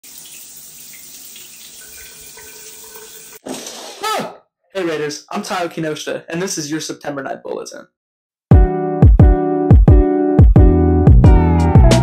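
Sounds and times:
shower water running: 0.0 - 3.8.

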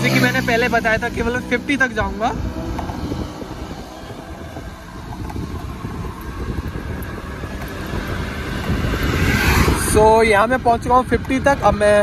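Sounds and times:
electric scooter road noise: 0.0 - 12.0
wind rushing over microphone: 0.0 - 12.0.

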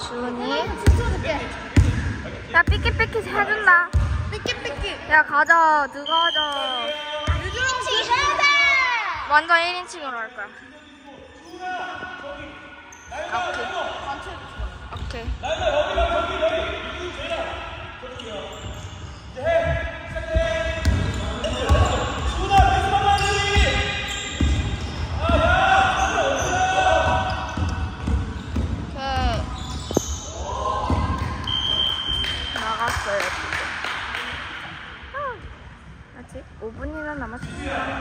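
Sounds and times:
sneakers squeaking: 0.5 - 9.3, 10.4 - 33.3
players shouting: 19.6 - 28.1.

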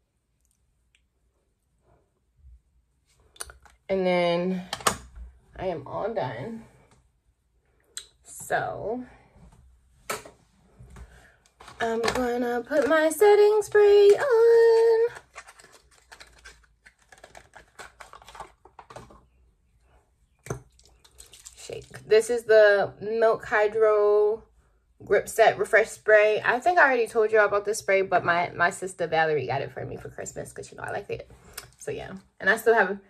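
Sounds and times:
woman speaking: 3.9 - 4.7, 5.6 - 6.7, 8.3 - 9.2, 11.8 - 15.2, 21.6 - 24.4, 25.0 - 31.2, 31.8 - 33.0.

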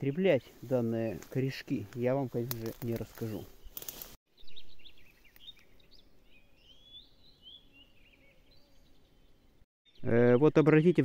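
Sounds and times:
bird chirping and warbling: 3.2 - 11.0.

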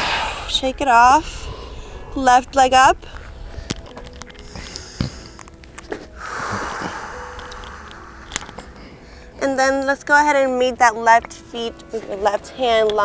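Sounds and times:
soft breathy rush: 0.0 - 2.3, 3.0 - 9.4.

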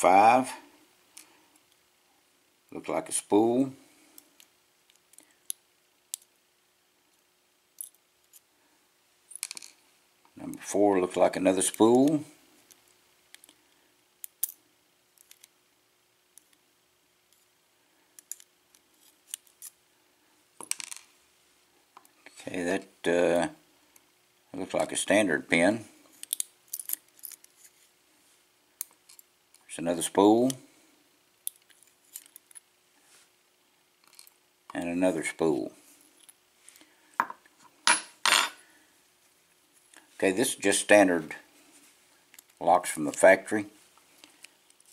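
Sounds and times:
metal lock parts clinking: 26.2 - 27.5, 31.5 - 32.6.

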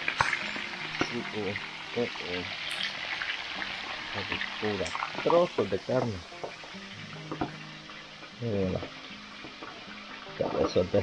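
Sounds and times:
fish frying in hot oil: 0.0 - 11.0.

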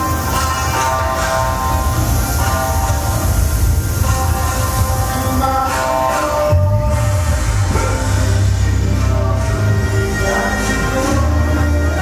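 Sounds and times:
dance music with sustained chords: 0.0 - 12.0
heavy bass: 0.0 - 12.0.

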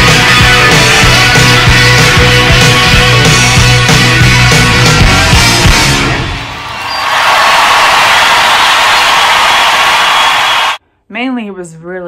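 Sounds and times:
rock band playing: 0.0 - 6.6
crowd cheering and applauding: 0.0 - 10.8.

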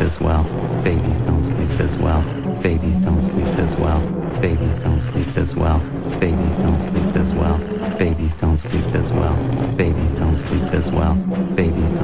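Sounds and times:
clicking percussion: 0.0 - 12.0.

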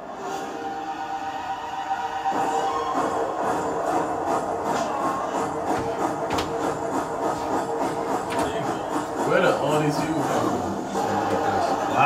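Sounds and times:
action film music with rhythmic beat: 1.9 - 12.0.

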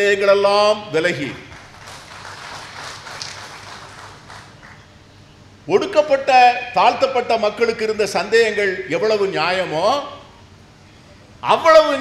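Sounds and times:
steady microphone hiss: 0.0 - 12.0.

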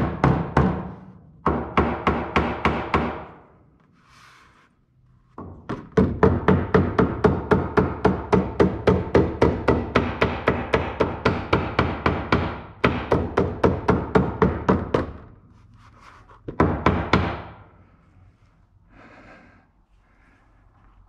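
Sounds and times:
hammer tapping on board over metal: 0.0 - 3.3, 5.4 - 15.2.

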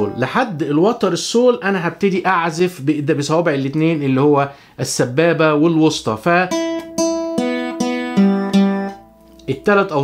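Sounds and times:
nylon-string guitar notes plucked: 0.0 - 1.0, 6.5 - 10.0.

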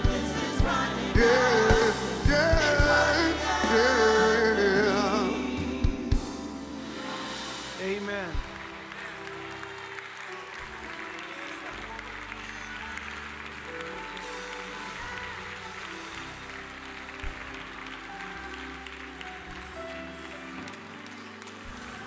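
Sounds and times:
church keyboard chords: 0.0 - 22.0
crowd noise: 0.0 - 22.0
applause: 7.8 - 22.0.

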